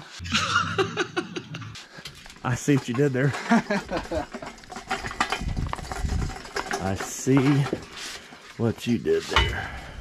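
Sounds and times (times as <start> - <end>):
floor jack clicks and clunks: 2.0 - 7.9.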